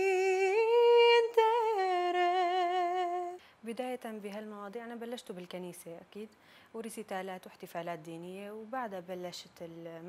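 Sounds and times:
girl singing a cappella: 0.0s - 4.7s.

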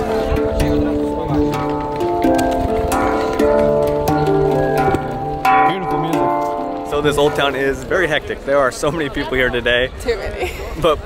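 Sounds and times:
handpan notes ringing: 0.0s - 8.0s.

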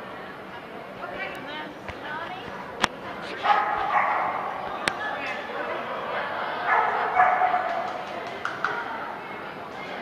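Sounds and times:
dog barking in yips: 3.4s - 4.5s, 6.7s - 8.0s.

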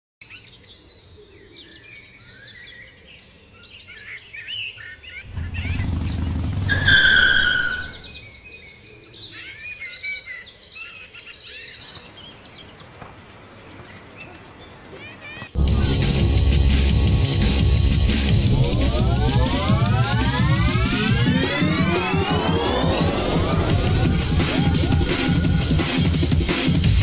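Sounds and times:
small birds chirping: 0.2s - 15.7s
low rumble: 5.3s - 8.1s, 15.6s - 27.0s.

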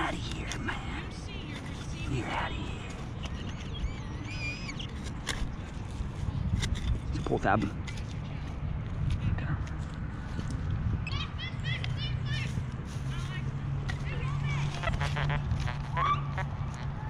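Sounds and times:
birds chirping: 0.0s - 6.4s, 11.0s - 12.3s.

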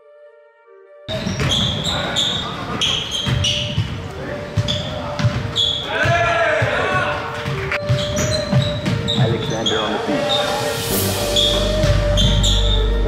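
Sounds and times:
basketball bouncing: 1.1s - 1.8s, 2.8s - 9.3s
sneakers squeaking: 1.1s - 10.7s, 11.3s - 13.0s
players calling out: 1.2s - 12.7s.

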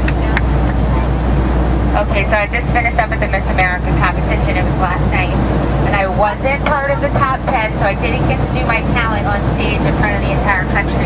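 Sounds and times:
airplane cabin drone: 0.0s - 11.0s.

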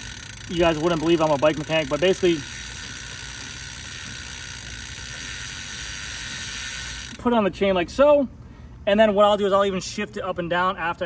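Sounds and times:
bicycle chain running: 0.0s - 7.4s
bicycle freehub ticking: 0.0s - 7.4s.

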